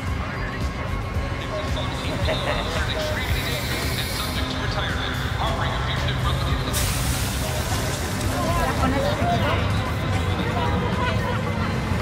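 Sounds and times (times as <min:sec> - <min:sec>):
crowd murmur: 0:00.0 - 0:12.0
broad hiss: 0:06.7 - 0:08.3.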